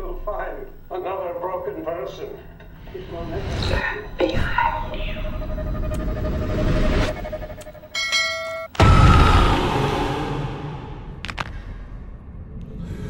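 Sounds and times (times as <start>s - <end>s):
eerie held tone: 0.0s - 11.2s
deep boom: 8.8s - 11.2s.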